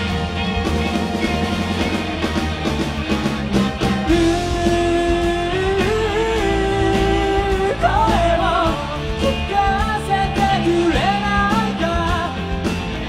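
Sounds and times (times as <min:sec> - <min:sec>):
live rock band playing: 0:00.0 - 0:13.0.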